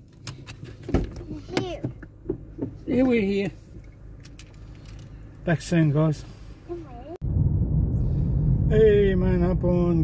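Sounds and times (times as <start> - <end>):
child's voice: 1.2 - 2.0, 6.7 - 7.2.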